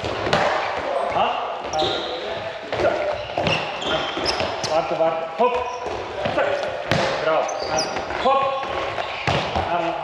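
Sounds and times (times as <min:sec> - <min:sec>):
shoe squeaks: 0:01.0 - 0:04.9, 0:05.6 - 0:06.0, 0:07.4 - 0:08.4, 0:09.0 - 0:09.6
balls bouncing on wooden floor: 0:02.7 - 0:10.0.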